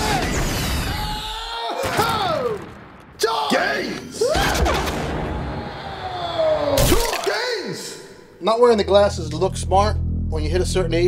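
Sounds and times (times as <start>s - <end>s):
low rumble: 8.7s - 11.0s.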